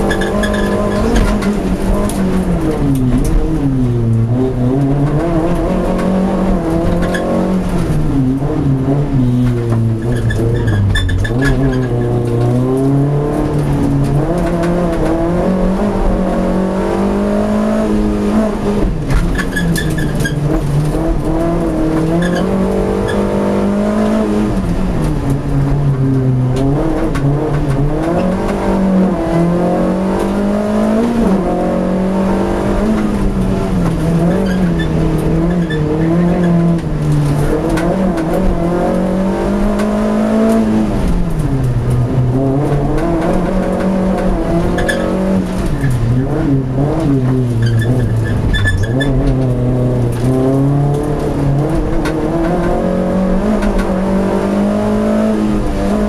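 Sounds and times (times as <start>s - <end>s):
race car engine from inside cabin: 0.0s - 56.0s.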